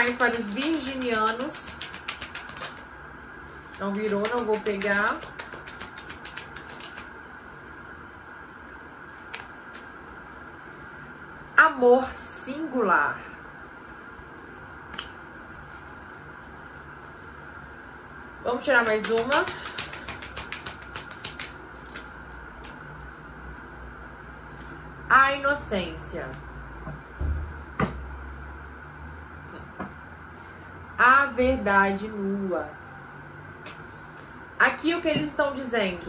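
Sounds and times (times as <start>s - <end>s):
cards being shuffled: 0.0s - 2.9s, 3.5s - 7.1s, 9.1s - 9.9s, 18.8s - 22.8s.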